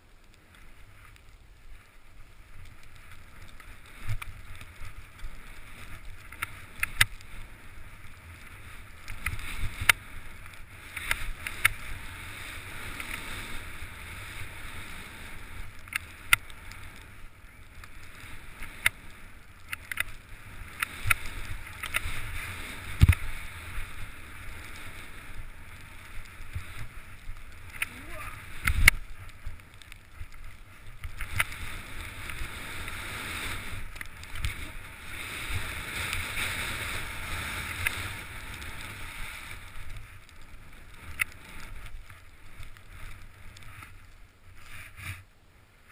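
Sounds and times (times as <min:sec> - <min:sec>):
skis hissing through powder snow: 0:00.5 - 0:45.9.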